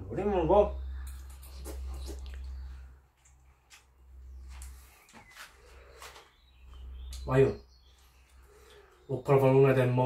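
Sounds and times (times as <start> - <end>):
low steady hum: 0.0 - 9.0
man chewing food: 1.0 - 6.2.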